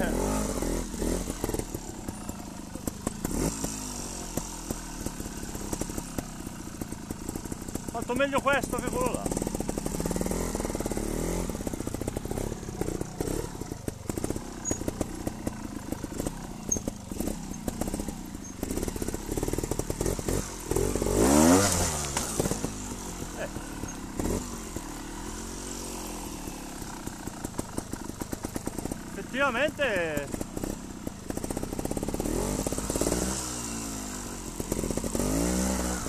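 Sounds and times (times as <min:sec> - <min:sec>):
motorcycle engine popping: 0:00.0 - 0:36.0
motorcycle engine revving: 0:00.0 - 0:36.0.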